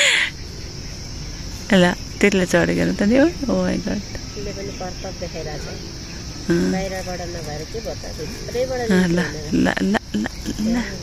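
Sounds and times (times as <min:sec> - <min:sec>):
people talking: 0:00.0 - 0:00.3, 0:01.7 - 0:05.9, 0:06.5 - 0:11.0
insects chirring: 0:00.0 - 0:11.0.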